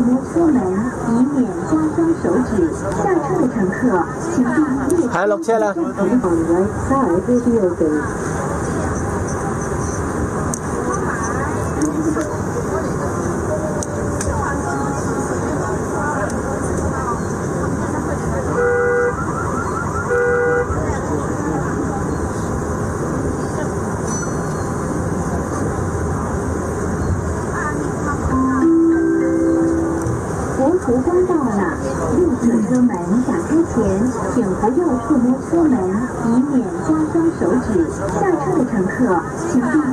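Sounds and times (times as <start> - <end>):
train rumble: 0.0 - 39.9
short electronic tones: 18.9 - 21.0.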